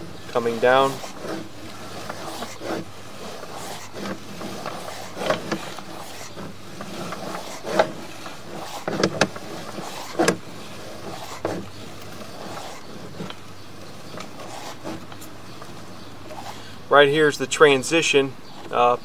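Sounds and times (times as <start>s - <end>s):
cable knocking and rubbing in pipe: 0.0s - 16.4s.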